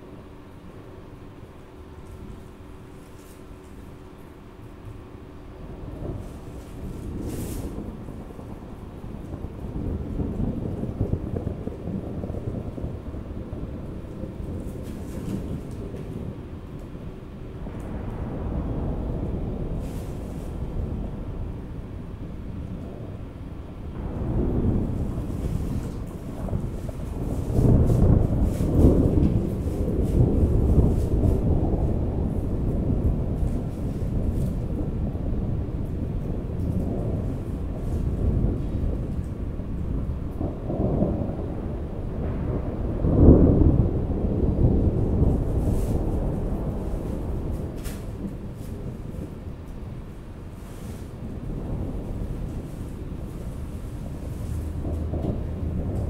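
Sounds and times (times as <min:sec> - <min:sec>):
deep rolling rumbles: 0:00.0 - 0:56.0.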